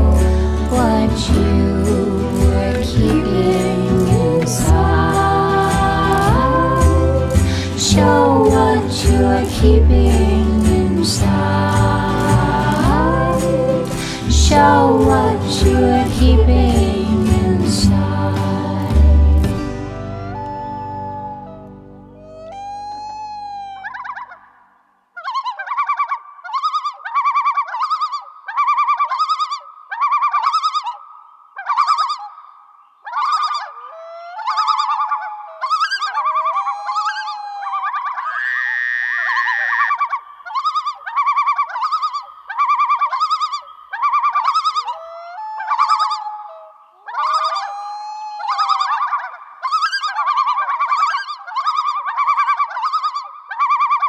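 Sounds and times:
bird quavering call: 0:33.1 - 0:54.0.

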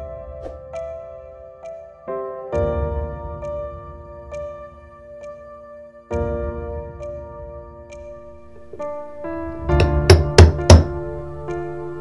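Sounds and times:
soft piano music: 0:00.0 - 0:12.0
sharp knocks: 0:09.6 - 0:11.0.

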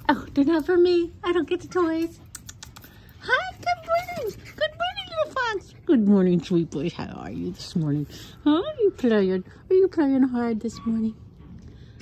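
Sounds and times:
fox claws clicking on tile: 0:02.0 - 0:04.4.

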